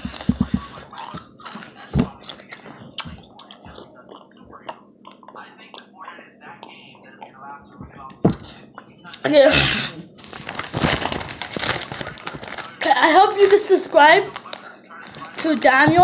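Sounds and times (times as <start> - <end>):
chewing crunchy chips: 0.1 - 5.9, 10.2 - 13.6.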